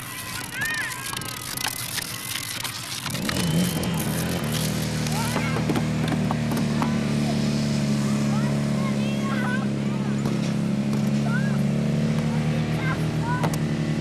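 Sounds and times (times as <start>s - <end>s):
small engine starting and running: 0.0s - 14.0s.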